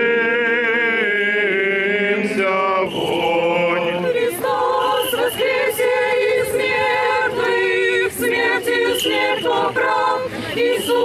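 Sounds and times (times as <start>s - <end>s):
women singing a cappella hymn: 0.0s - 11.0s.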